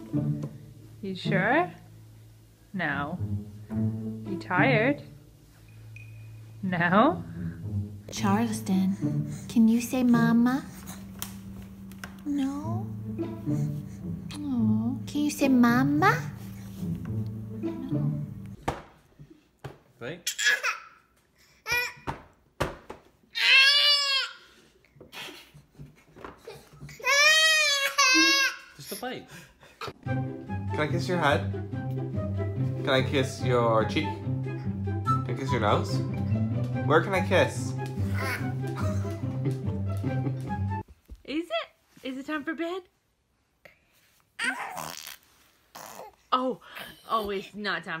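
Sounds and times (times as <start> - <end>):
toddler crying: 21.6 - 22.1, 23.4 - 24.6, 26.5 - 28.9, 38.0 - 39.2, 44.4 - 45.2
baby grumbling: 38.1 - 39.0, 44.4 - 46.3.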